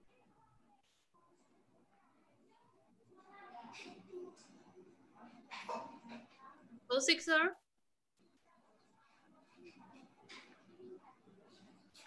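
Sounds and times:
faint indistinct sounds over call: 0.0 - 12.0.

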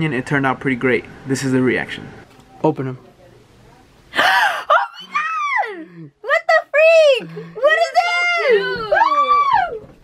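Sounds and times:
woman gasping: 4.1 - 4.8.

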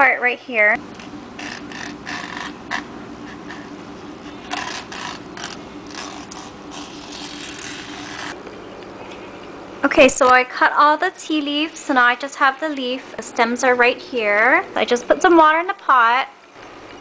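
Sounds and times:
steady hum: 0.0 - 17.0.

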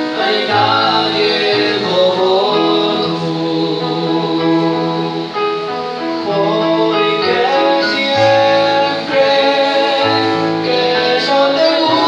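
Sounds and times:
man singing through microphone: 0.0 - 5.5, 6.2 - 12.0
instrumental accompaniment: 0.0 - 12.0.

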